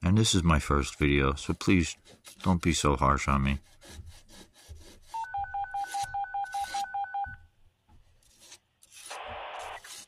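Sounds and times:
dual-tone beeps: 5.2 - 7.4
single tone: 5.2 - 7.4.

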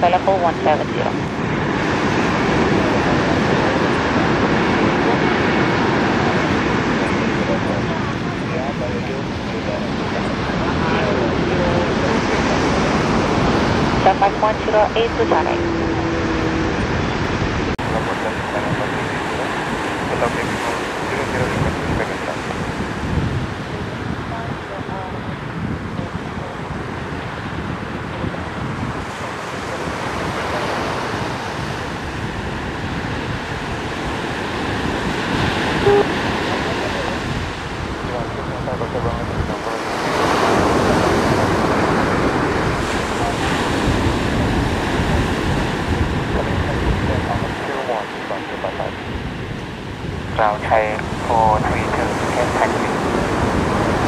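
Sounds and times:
sea surf washing ashore: 0.0 - 54.0
wind buffeting microphone: 0.0 - 54.0.

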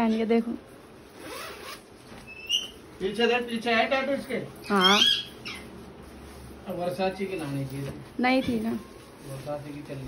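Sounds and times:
zipper pulled open: 1.1 - 1.9.

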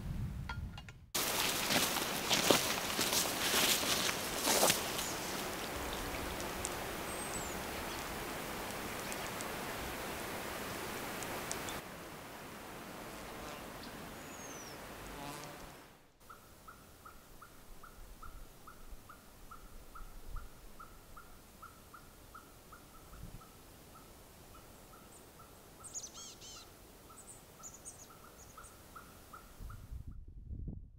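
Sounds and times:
rushing hiss: 1.2 - 13.3
bird whistle: 25.9 - 26.6
high bird chirps: 25.9 - 26.6.

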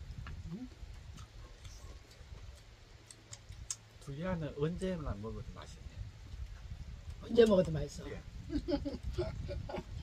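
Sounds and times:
wind rumble on microphone: 0.0 - 10.0
small eating clicks: 0.5 - 4.1.

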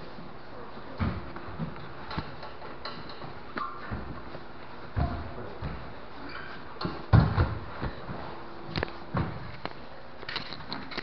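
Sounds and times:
bodies thumping on padded mat: 6.9 - 8.4, 9.1 - 9.5.

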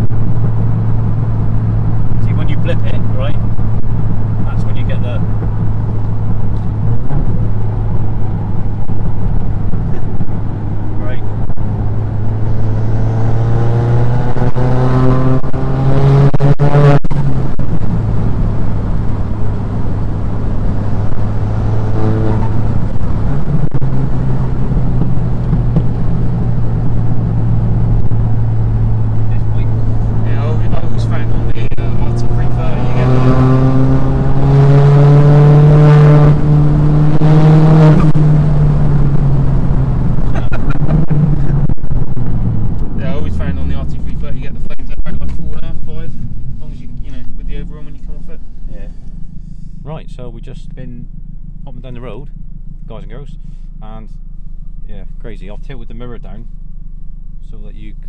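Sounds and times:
car engine accelerating from inside: 0.0 - 57.6.

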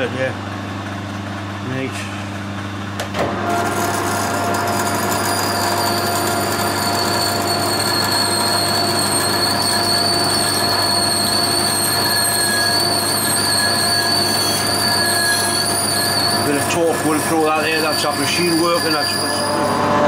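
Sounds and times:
lathe gear whine: 3.2 - 20.0.

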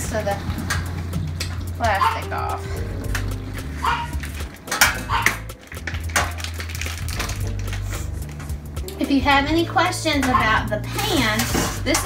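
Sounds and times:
background music low held notes: 0.0 - 12.0
plastic wrap crinkling: 3.6 - 8.8.

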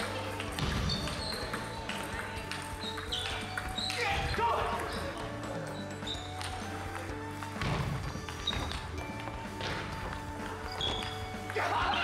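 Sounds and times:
table tennis ball clicking: 0.0 - 5.0
background music: 0.0 - 12.0.

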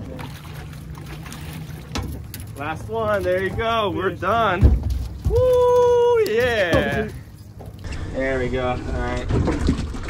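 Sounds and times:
people whooping and yelling: 5.3 - 6.4.

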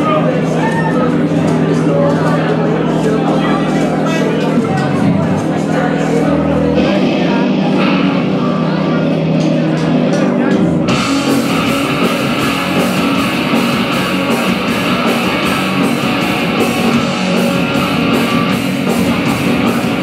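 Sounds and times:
held guitar tones: 0.0 - 20.0
live rock band playing: 0.0 - 20.0.

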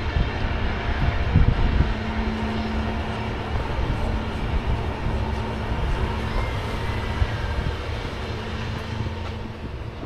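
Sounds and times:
constant low hum: 0.0 - 10.0
low engine rumble: 0.0 - 10.0.

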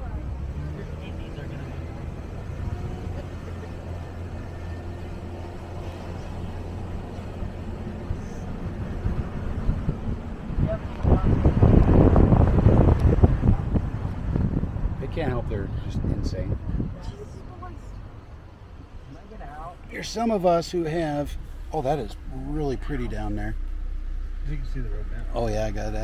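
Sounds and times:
diesel truck engine drone: 0.0 - 26.0
tyres on road: 0.0 - 26.0
wind buffeting microphone: 1.8 - 18.5.

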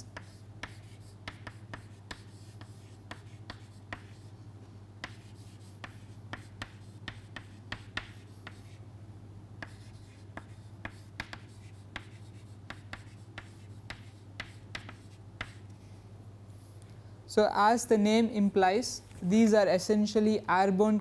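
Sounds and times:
chalk writing on a chalkboard: 0.0 - 8.8, 9.6 - 15.8
steady low hum: 0.0 - 21.0.

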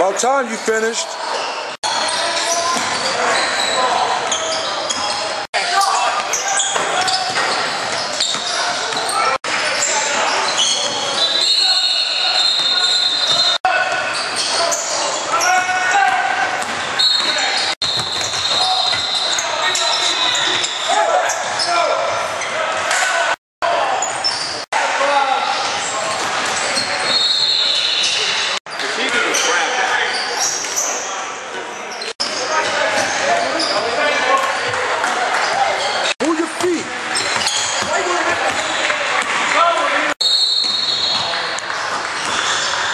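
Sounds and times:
voices in a gym: 0.0 - 42.9
sneakers squeaking on court: 1.2 - 15.7, 16.4 - 22.6, 23.9 - 24.6, 25.5 - 31.2, 31.8 - 34.8, 35.4 - 39.5, 40.2 - 42.9
basketball bouncing: 16.5 - 19.0.

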